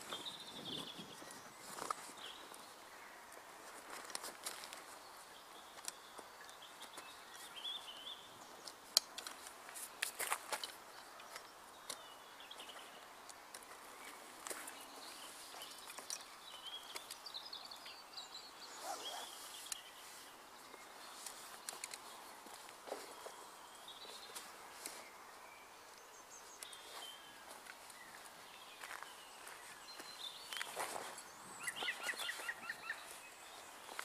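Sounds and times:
birds chirping: 0.0s - 34.0s
tent poles clicking and knocking: 3.7s - 4.9s, 8.6s - 12.1s, 15.6s - 17.2s, 21.1s - 23.4s
canvas rustling: 18.7s - 20.4s.

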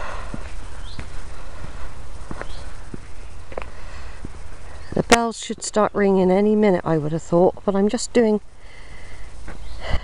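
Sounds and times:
footsteps on paved path: 0.0s - 5.9s, 9.4s - 10.0s
steady low rumble: 0.0s - 10.0s.

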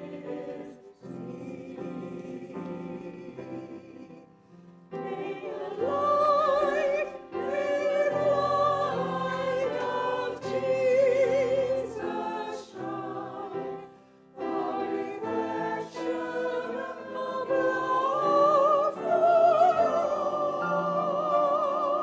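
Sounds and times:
mixed choir singing: 0.0s - 22.0s.

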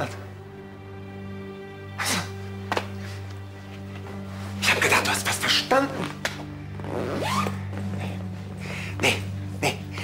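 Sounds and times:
low drone of music: 0.0s - 10.0s.

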